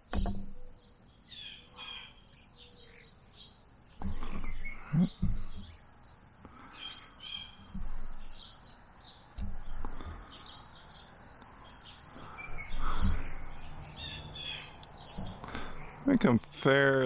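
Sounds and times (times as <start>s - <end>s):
dull thumps of wood handling: 0.0s - 0.6s, 4.0s - 5.8s
birds calling: 0.0s - 17.0s.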